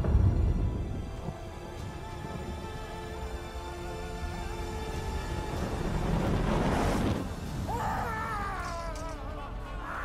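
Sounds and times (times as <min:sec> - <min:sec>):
dramatic film score: 0:00.0 - 0:10.0
men crying out and wailing: 0:07.6 - 0:10.0.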